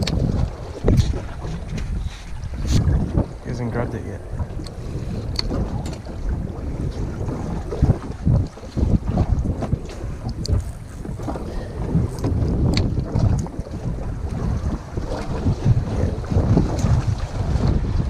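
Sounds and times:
wind buffeting microphone: 0.0 - 18.0
faint high ticks: 10.2 - 11.1.

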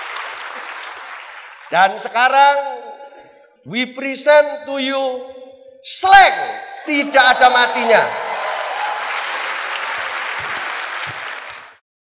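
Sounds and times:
audience applauding: 0.0 - 1.7, 7.0 - 11.8.

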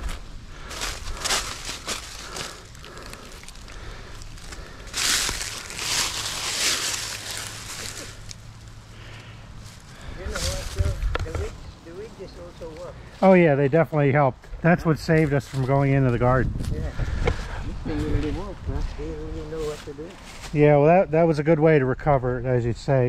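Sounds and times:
footsteps crunching through dry leaves: 0.0 - 12.1, 16.6 - 20.6.

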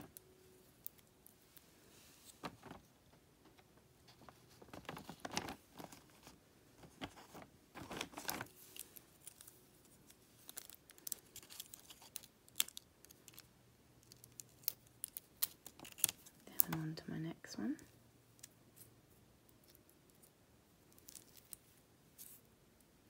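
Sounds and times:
plastic sticker sheet crinkling: 4.1 - 16.8.

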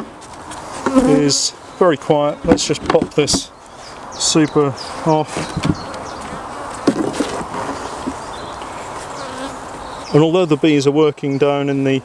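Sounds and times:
honeybees humming: 0.0 - 10.8
wooden hive parts knocking: 2.4 - 3.5, 5.3 - 8.2.

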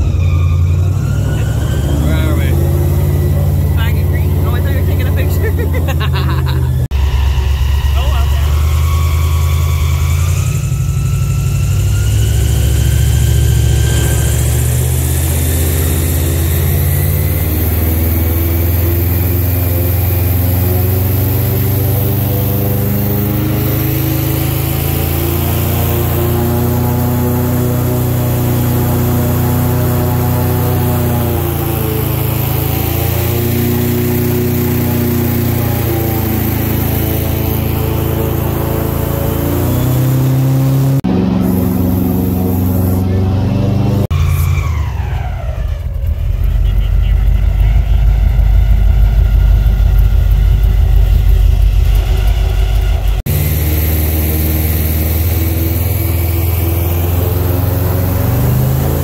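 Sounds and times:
rising whine: 0.0 - 59.0
airboat engine and propeller: 1.4 - 59.0.

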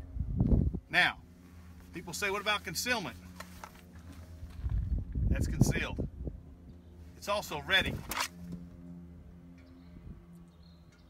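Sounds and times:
low steady hum: 0.0 - 11.0
cloth rustling: 3.2 - 4.7
low rumble: 4.1 - 10.6.

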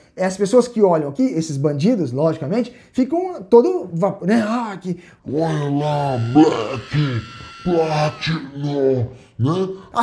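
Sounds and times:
high electric buzz: 5.8 - 8.4.

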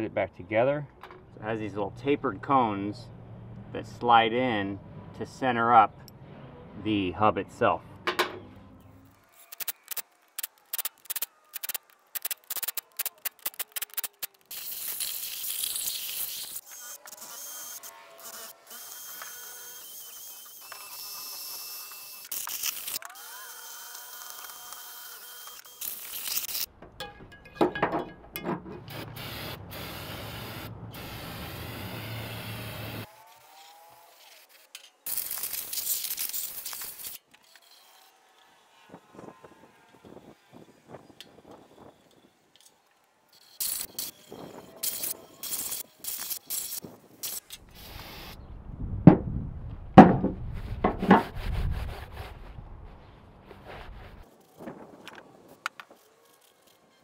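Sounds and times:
power tool scraping metal: 9.2 - 26.7, 28.6 - 42.3, 43.3 - 48.2
tool clicking and ratcheting: 9.4 - 16.8.

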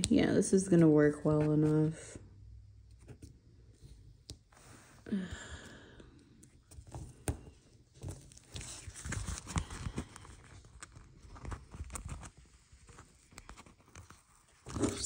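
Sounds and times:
paper rustling: 6.7 - 15.0.

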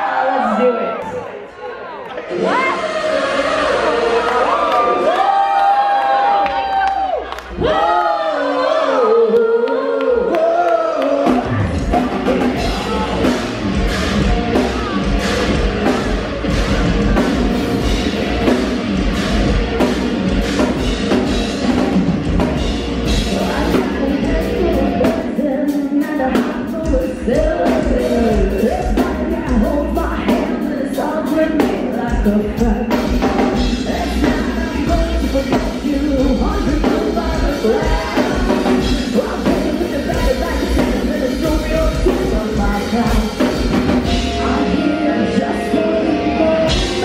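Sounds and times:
crowd singing a cappella: 2.1 - 5.2, 7.5 - 18.6, 23.0 - 26.7, 27.3 - 47.0
drum kit pounding: 11.2 - 44.6, 46.7 - 47.0
heavy metal band playing: 11.2 - 47.0.

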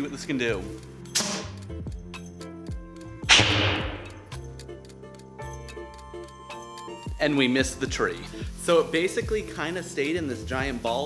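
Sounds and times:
background music: 0.0 - 11.0
air cannon blast: 3.2 - 4.4.

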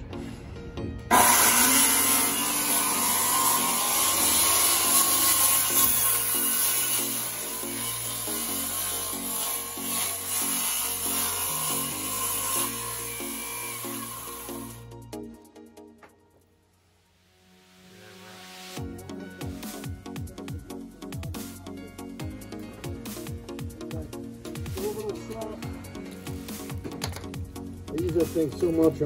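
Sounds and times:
background music with steady pulse: 0.0 - 29.0
circular saw cutting fiberglass: 1.1 - 14.9.

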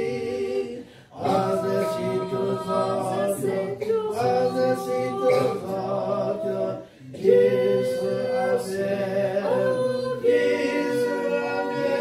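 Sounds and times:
people singing a cappella: 0.0 - 12.0.

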